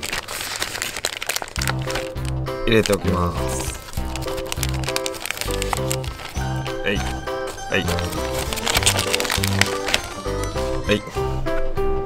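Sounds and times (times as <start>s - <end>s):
plastic bag crinkling: 0.0s - 10.9s
background music: 1.6s - 12.0s.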